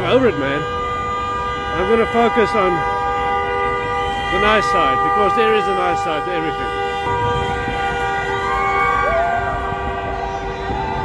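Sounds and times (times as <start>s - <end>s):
horns blowing long notes: 0.0s - 11.0s.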